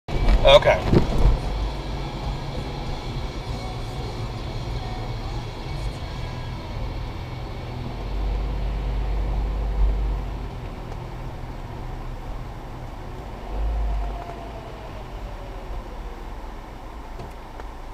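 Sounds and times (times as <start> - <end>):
car interior road noise: 0.1 - 17.9
low engine rumble: 0.1 - 17.9.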